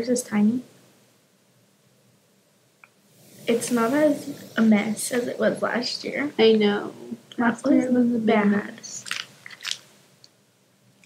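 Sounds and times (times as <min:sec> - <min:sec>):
plastic piping bag crinkling: 0:09.0 - 0:09.9.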